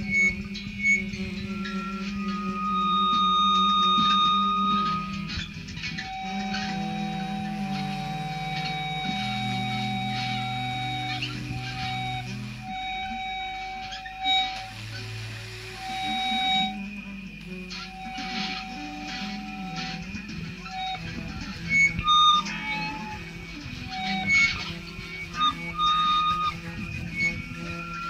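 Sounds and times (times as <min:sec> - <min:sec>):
instrumental music with held tones: 0:00.0 - 0:28.0.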